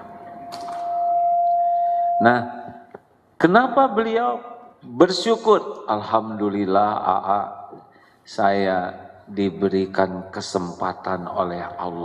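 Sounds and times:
microphone feedback ringing: 0.0s - 2.9s.

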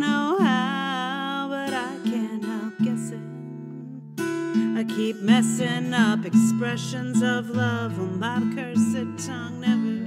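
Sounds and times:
person singing: 0.0s - 10.0s
strummed acoustic guitar: 0.0s - 10.0s.

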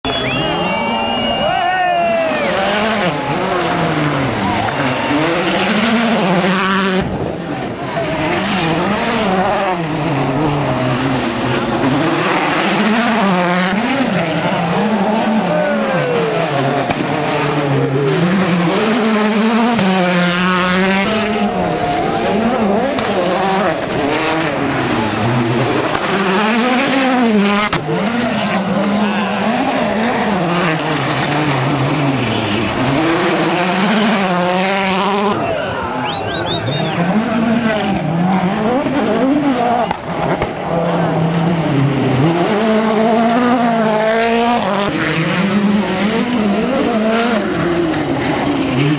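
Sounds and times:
rally car engines revving: 0.1s - 48.9s.

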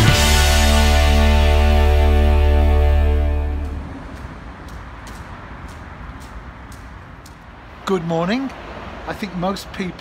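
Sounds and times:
rock guitar music: 0.0s - 3.9s
outdoor background noise: 0.0s - 10.0s
footsteps on wet path: 1.8s - 10.0s.

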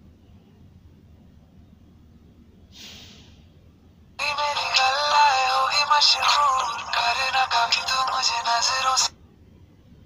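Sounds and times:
song through small phone loudspeaker: 4.2s - 9.2s.

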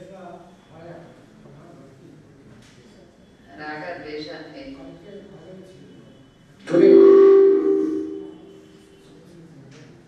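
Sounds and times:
microphone feedback howl: 6.7s - 9.0s.

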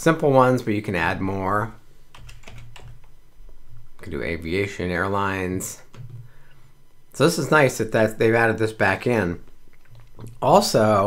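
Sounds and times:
keyboard typing: 2.1s - 3.1s, 5.9s - 6.3s.

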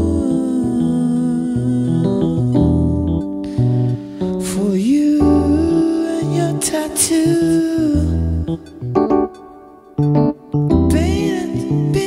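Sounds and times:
person humming: 0.0s - 8.7s
electric piano chords: 0.0s - 12.0s.

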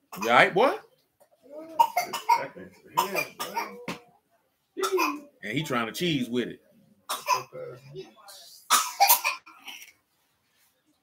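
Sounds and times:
person coughing: 1.8s - 3.9s.

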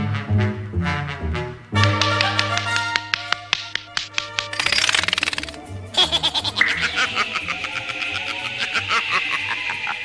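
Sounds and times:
sharp taps and clicks: 1.8s - 5.6s.

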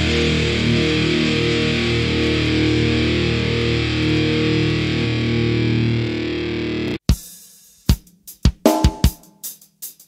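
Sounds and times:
distorted electric guitar chord: 0.0s - 7.0s.

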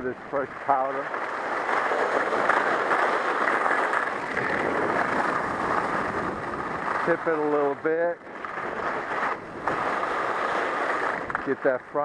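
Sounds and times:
wind on camera: 0.0s - 11.6s
skis sliding over snow: 0.0s - 12.0s.

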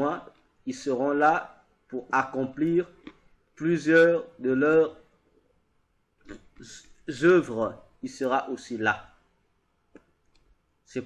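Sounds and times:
man speaking: 0.0s - 5.1s, 6.3s - 9.2s.

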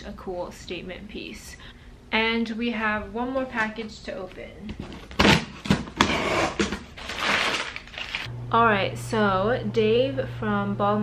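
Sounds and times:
packing paper rustling: 4.7s - 8.3s
packing tape being slit: 5.0s - 8.3s.

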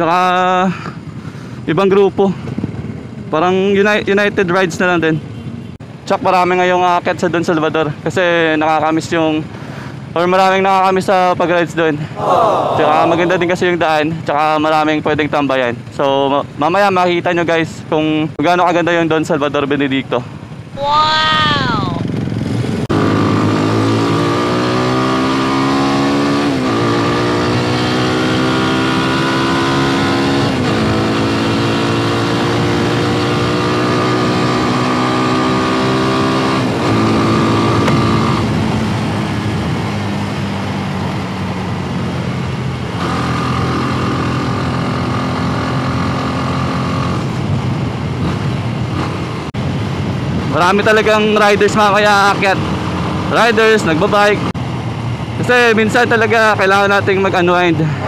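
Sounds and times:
motorcycle engine accelerating: 21.3s - 50.6s.

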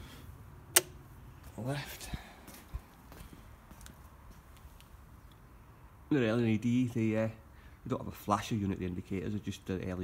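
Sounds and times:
faint footsteps on paving slabs: 1.3s - 5.0s.

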